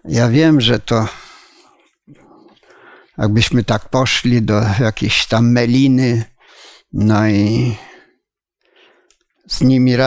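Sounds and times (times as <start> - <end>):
man speaking: 0.0 - 1.6, 3.2 - 6.3, 6.9 - 8.0, 9.5 - 10.0
breath: 1.1 - 3.2, 6.4 - 6.9, 7.8 - 9.3.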